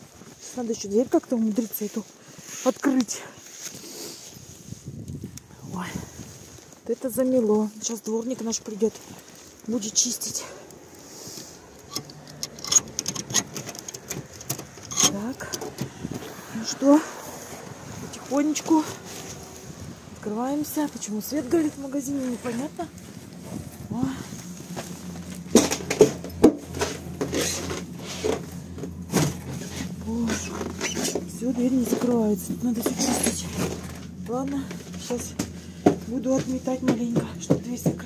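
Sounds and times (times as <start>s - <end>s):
packed snow crunching: 0.0s - 12.3s, 14.2s - 38.0s
metal door scraping on snow: 11.1s - 16.6s, 24.7s - 37.0s.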